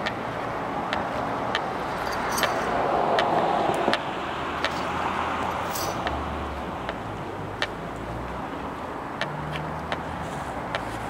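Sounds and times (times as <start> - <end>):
footsteps on asphalt: 0.0 - 11.0
road traffic hum: 0.0 - 11.0.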